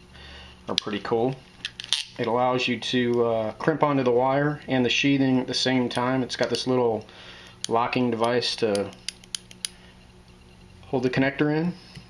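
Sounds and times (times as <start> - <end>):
faint steady hum: 0.0 - 12.0
crimping pliers clicking: 7.6 - 9.8.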